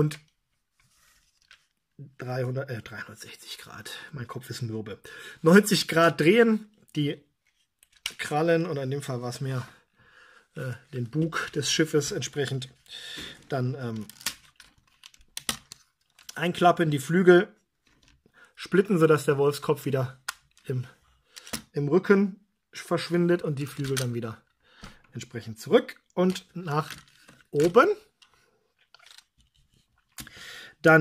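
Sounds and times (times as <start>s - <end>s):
plastic toy parts clicking: 7.8s - 8.2s, 14.0s - 16.4s, 20.2s - 20.7s, 21.3s - 21.7s, 23.6s - 24.2s, 26.3s - 30.3s.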